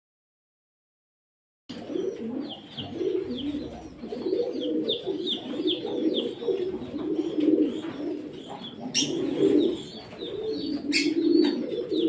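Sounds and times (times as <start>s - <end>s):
pigeons cooing: 1.7s - 12.0s.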